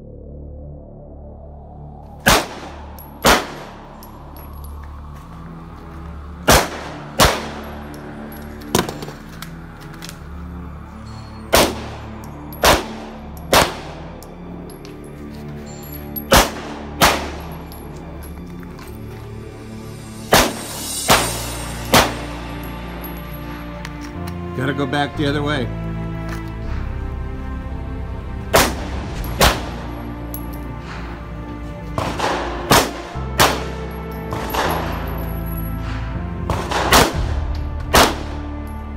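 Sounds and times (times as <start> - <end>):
background music: 0.0 - 38.9
pistol shots: 2.2 - 3.8, 6.4 - 7.9, 11.5 - 14.2, 16.3 - 17.6, 20.3 - 22.4, 28.5 - 29.9, 32.0 - 35.2, 36.5 - 38.5.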